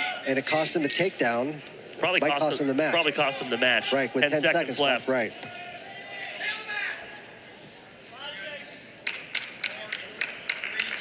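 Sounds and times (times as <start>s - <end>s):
sharp hand claps: 9.0s - 11.0s.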